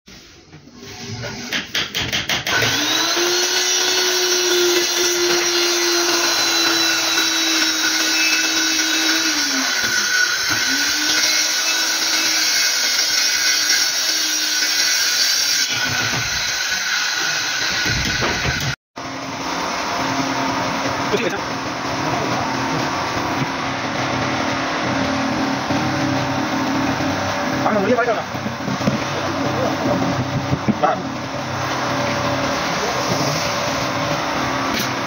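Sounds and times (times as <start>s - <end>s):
circular saw cutting plywood: 2.4s - 35.0s.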